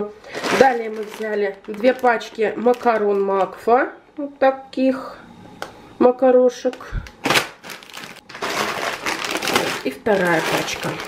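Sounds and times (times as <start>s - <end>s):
plastic packet crinkling: 0.2s - 3.6s, 7.2s - 11.0s.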